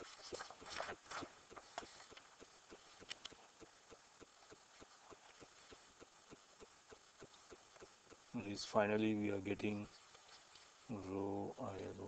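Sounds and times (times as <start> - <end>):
paper rustling: 0.0 - 2.3.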